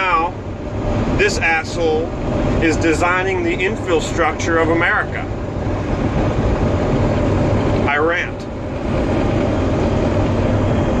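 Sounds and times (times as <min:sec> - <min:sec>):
truck rumble from inside cab: 0:00.0 - 0:11.0.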